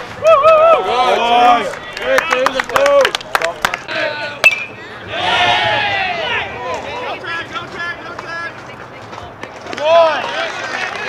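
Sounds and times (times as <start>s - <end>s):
people shouting and calling out: 0.2s - 3.1s, 3.8s - 8.6s
loud drawn-out shout: 5.0s - 7.2s.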